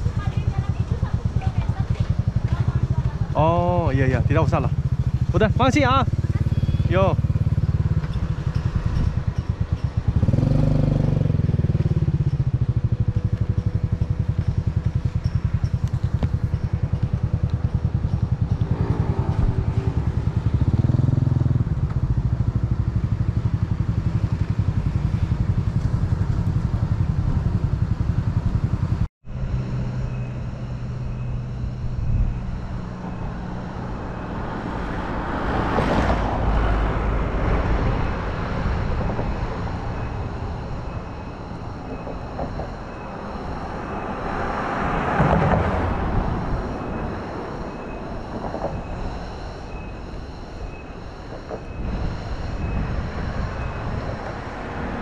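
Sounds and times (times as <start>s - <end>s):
motorcycle engine running: 0.0s - 55.0s
road and wind noise: 0.0s - 55.0s.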